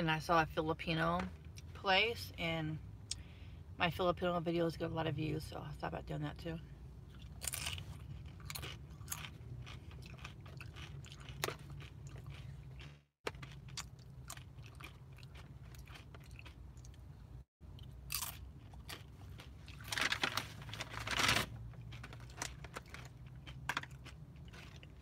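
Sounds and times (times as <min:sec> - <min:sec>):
chips crunching while chewed: 0:07.2 - 0:17.0, 0:17.7 - 0:25.0.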